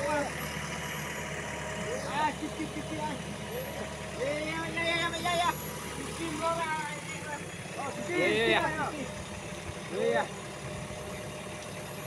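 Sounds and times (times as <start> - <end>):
diesel engine running: 0.0 - 12.0
men calling out: 1.6 - 10.7.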